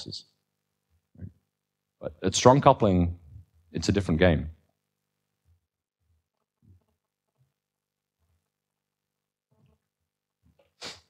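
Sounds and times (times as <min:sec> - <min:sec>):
sharp burst of breath: 0:10.8 - 0:11.0.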